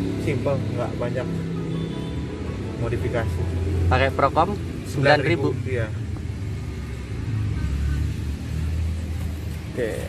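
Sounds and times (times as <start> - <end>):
car engine idling: 0.0 - 10.0.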